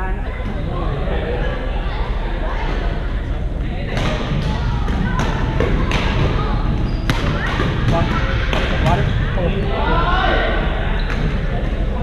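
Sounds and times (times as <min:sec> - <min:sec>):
chatter of players: 0:00.0 - 0:12.0.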